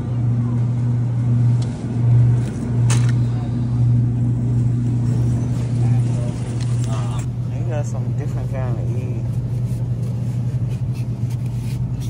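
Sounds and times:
refrigerated display case humming: 0.0 - 12.0.

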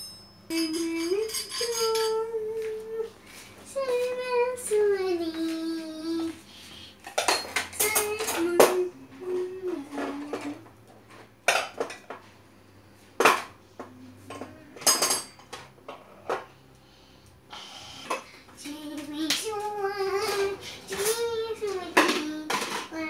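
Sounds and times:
child singing wordless notes: 0.5 - 6.5, 7.7 - 10.6, 18.6 - 23.0.

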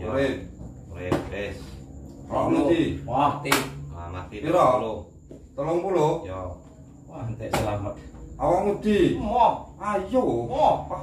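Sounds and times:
man speaking: 0.0 - 11.0
slap on a tabletop: 3.4 - 3.8.

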